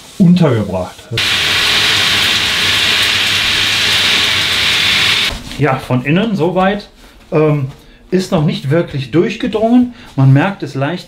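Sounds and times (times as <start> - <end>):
shower water hissing on fabric: 1.2 - 5.4.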